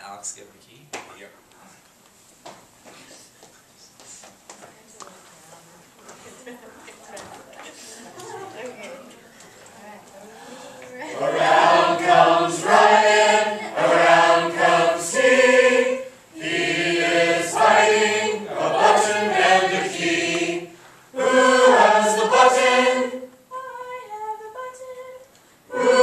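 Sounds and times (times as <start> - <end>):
group singing unaccompanied: 10.5 - 26.0
single quieter voice singing: 10.7 - 26.0.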